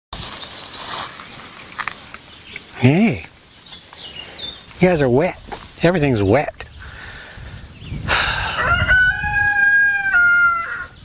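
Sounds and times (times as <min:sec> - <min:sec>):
footsteps through wet grass: 0:00.1 - 0:06.5.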